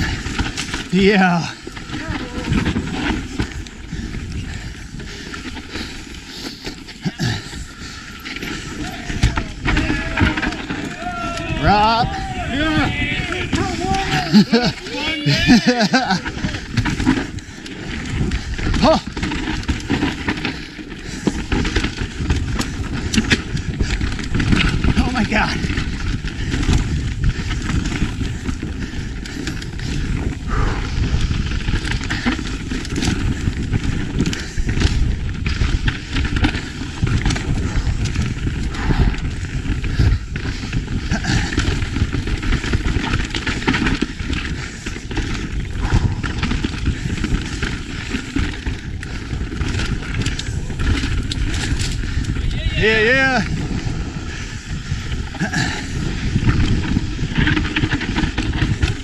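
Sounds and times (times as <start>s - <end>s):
bike clattering over bumps: 0.0s - 59.0s
tyre and wind rush: 0.0s - 59.0s.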